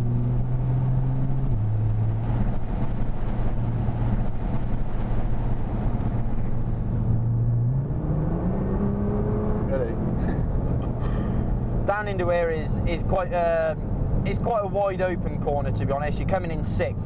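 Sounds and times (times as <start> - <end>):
car engine running hard: 0.0 - 16.9
tyre and road noise: 0.0 - 17.0.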